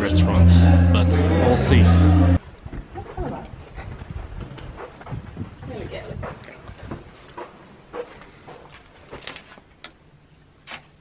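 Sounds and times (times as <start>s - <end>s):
footsteps on carpet: 6.2s - 9.6s.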